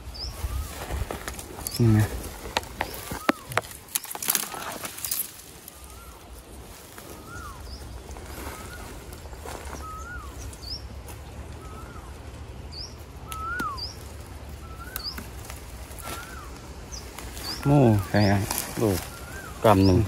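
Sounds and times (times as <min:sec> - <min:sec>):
bird calling: 0:00.0 - 0:20.0.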